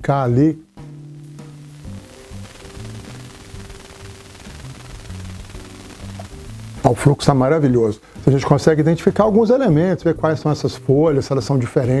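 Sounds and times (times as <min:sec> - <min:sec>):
faint hiss: 0:00.0 - 0:09.9
lounge music with pulsing beat: 0:00.4 - 0:08.6.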